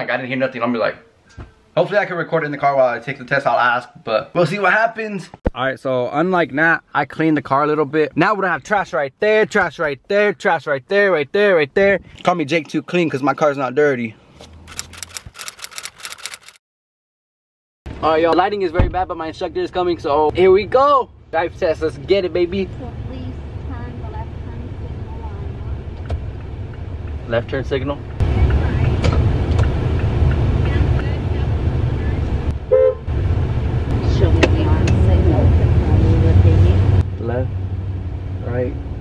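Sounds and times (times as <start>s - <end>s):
typewriter key clacks: 14.7s - 16.6s
car horn beep: 32.7s - 33.1s.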